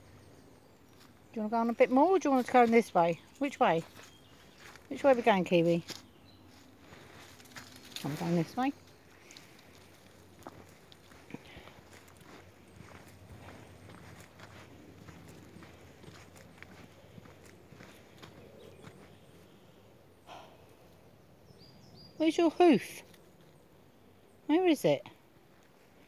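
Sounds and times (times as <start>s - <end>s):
footsteps on dirt path: 0.9s - 19.6s
leaves and twigs crackling underfoot: 2.1s - 19.3s.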